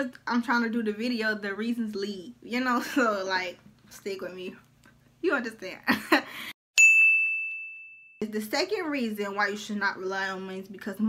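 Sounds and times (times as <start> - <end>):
bright bell-like ding: 6.8 - 8.2.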